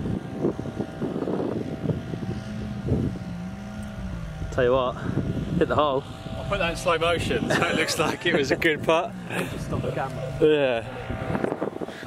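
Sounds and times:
wind rumbling on microphone: 0.0s - 12.0s
low steady tone: 1.6s - 7.5s.

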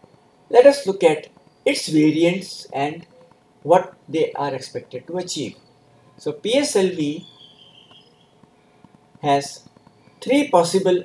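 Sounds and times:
faint high whine: 0.0s - 11.0s
man lecturing: 0.5s - 3.0s, 3.7s - 5.6s, 6.2s - 7.3s, 9.2s - 9.6s, 10.2s - 11.0s.

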